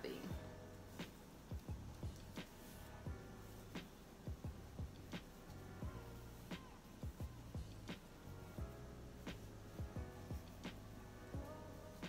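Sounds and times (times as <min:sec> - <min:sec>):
snare or hi-hat clicks: 0:01.0 - 0:02.7, 0:03.8 - 0:04.0, 0:10.6 - 0:10.9
deep kick drums: 0:01.5 - 0:02.2, 0:04.3 - 0:05.2, 0:07.0 - 0:07.8, 0:09.8 - 0:10.5.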